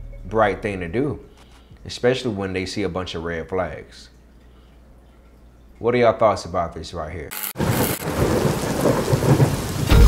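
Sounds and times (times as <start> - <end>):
steady rain: 7.6 - 10.0
low thunder rumble: 8.0 - 10.0.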